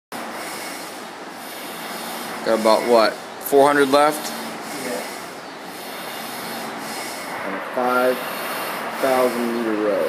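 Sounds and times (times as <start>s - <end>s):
rowing machine flywheel whooshing: 0.2s - 10.0s.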